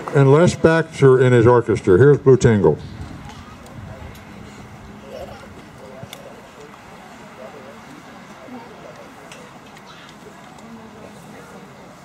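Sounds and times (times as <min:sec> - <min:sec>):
murmur of audience chatting: 0:00.0 - 0:12.0.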